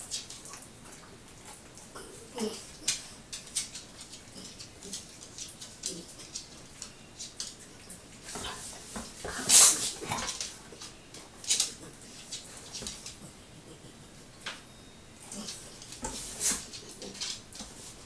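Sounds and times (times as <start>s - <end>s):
dog scuffling and snuffling: 2.4s - 14.0s, 15.2s - 18.0s.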